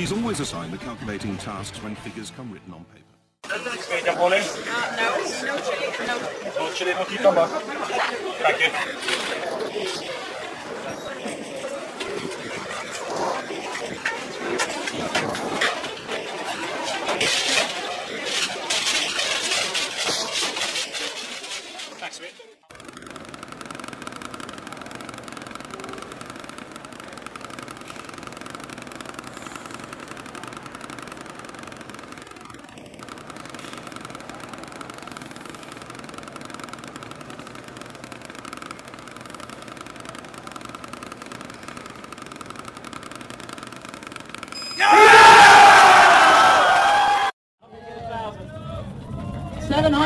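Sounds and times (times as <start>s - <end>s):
people shouting and cheering: 44.8s - 50.0s.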